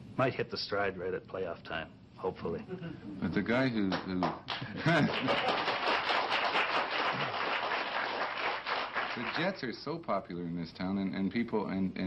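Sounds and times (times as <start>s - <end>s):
audience clapping: 3.9s - 9.6s
audience laughing: 4.8s - 5.9s.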